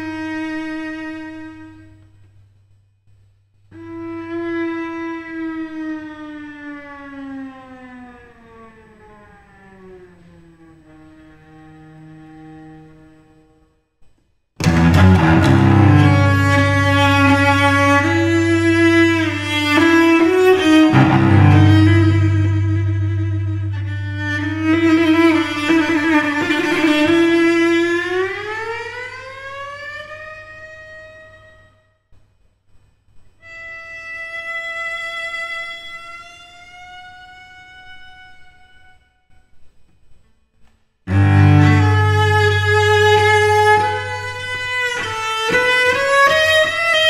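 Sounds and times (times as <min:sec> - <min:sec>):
cello bowed note sliding down: 0:07.8 - 0:13.7, 0:14.6 - 0:31.7, 0:41.1 - 0:47.0.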